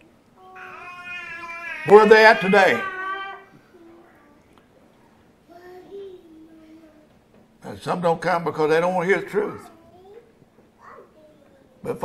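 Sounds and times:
child calling out: 0.4s - 4.2s
man's voice loud: 1.8s - 2.9s
man preaching: 1.8s - 3.1s, 7.6s - 9.6s.

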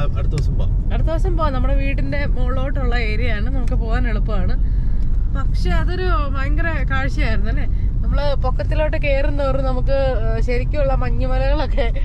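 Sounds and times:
car cabin road rumble: 0.0s - 12.0s
woman talking: 0.9s - 4.6s, 5.4s - 12.0s.

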